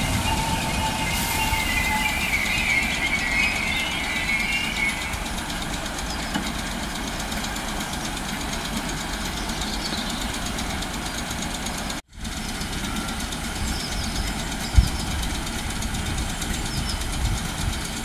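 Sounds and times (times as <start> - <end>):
electric train low rumble: 0.0 - 18.0.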